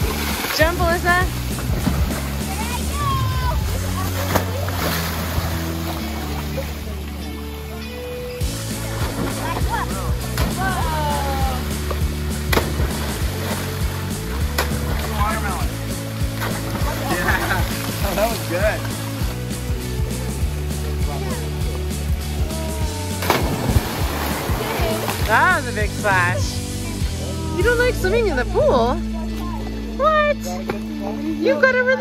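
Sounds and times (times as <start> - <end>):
kids splashing into pool: 0.0 - 6.9, 8.7 - 15.7, 16.3 - 18.6, 22.5 - 25.6
background music: 0.0 - 32.0
children shouting: 9.4 - 11.6.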